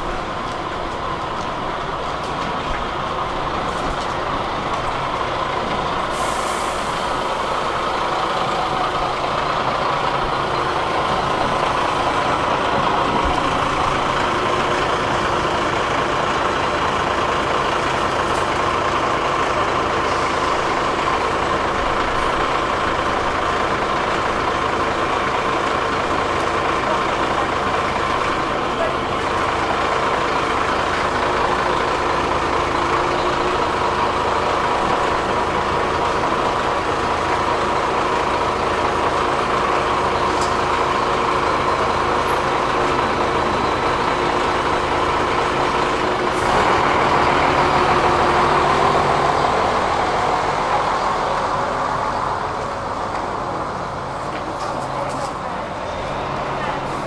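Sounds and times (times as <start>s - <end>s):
bus engine idling: 0.0s - 57.0s.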